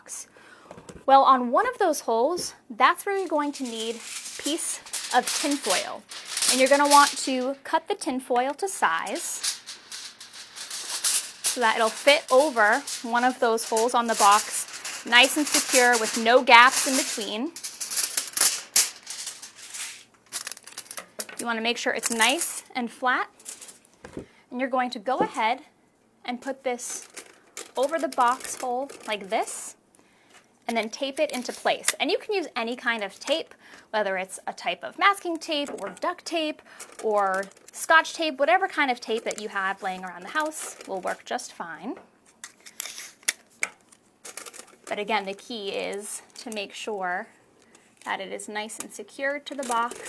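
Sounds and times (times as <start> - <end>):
tin foil crinkling: 3.0 - 22.7, 23.4 - 23.9, 26.8 - 29.7, 30.7 - 33.5, 35.1 - 41.3, 42.2 - 46.8, 49.0 - 50.0
scissors cutting foil: 3.2 - 7.6, 8.8 - 21.0, 42.4 - 43.4, 49.4 - 50.0
tape unrolling rasp: 9.1 - 21.0, 42.3 - 44.8.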